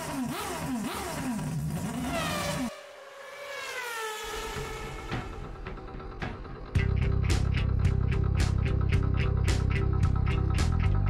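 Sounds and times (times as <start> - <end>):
engine revving sound effect: 0.0 - 8.8.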